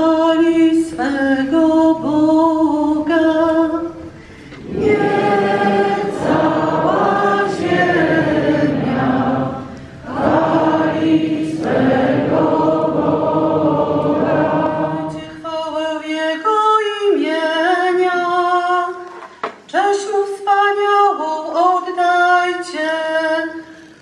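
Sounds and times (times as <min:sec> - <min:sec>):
congregation singing a hymn: 0:00.0 - 0:18.6.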